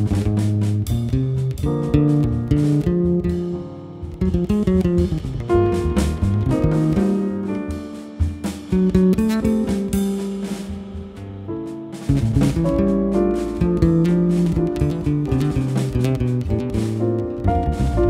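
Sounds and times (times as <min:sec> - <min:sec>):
jazz piano trio playing: 0:00.0 - 0:18.0.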